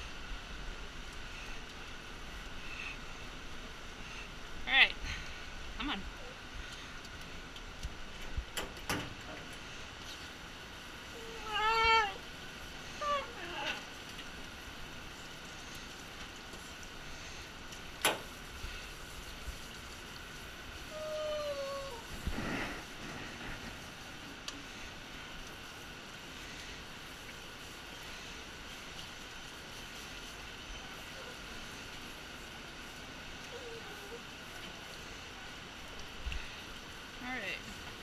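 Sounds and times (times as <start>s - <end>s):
dog whining: 11.1s - 12.2s, 12.9s - 13.9s, 20.9s - 22.1s.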